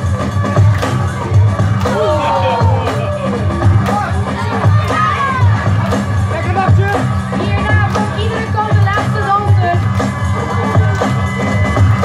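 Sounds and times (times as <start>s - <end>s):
hip-hop music over sound system: 0.0s - 12.0s
children shouting and cheering: 0.2s - 6.0s.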